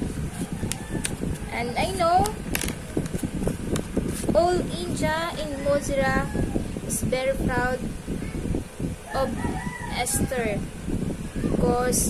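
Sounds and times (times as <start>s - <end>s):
rooster crowing: 0.3s - 1.5s, 5.4s - 6.7s, 9.1s - 10.5s
woman speaking: 1.5s - 2.4s, 4.3s - 7.8s, 9.2s - 10.6s, 11.6s - 12.0s.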